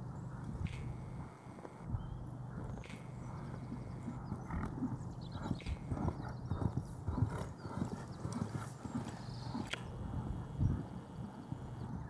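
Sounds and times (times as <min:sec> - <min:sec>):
horse hooves trotting on sand: 0:00.0 - 0:12.0.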